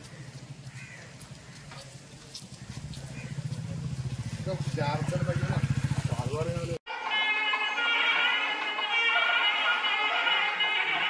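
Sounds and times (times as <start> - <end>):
bird calls: 0.0 - 3.6.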